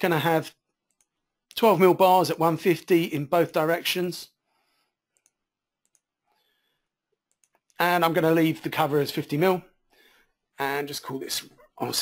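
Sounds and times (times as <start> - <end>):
faint computer mouse clicks: 5.1 - 6.1.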